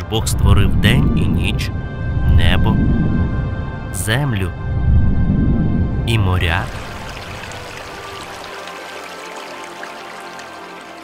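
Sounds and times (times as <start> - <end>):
soft background music: 0.0 - 11.0
water flowing: 4.0 - 11.0.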